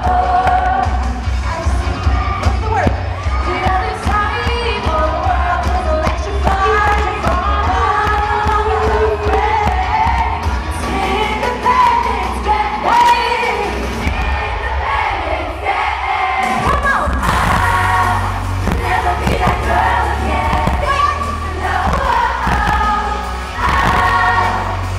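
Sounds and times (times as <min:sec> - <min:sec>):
woman singing into microphone: 0:00.0 - 0:14.9, 0:16.5 - 0:24.9
backing track with heavy bass: 0:00.0 - 0:24.9
crowd cheering: 0:01.5 - 0:24.9.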